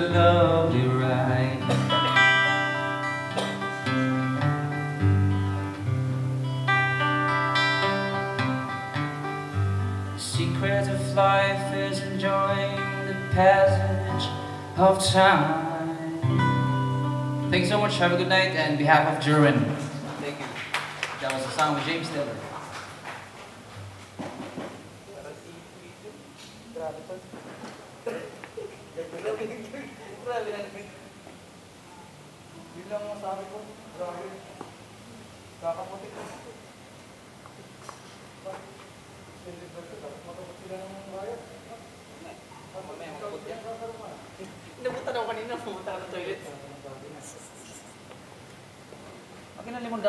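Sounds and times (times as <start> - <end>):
people talking: 17.6 - 20.6, 21.2 - 22.5, 28.1 - 31.1, 39.4 - 47.9
music equipment knocks and clatter: 24.0 - 24.9.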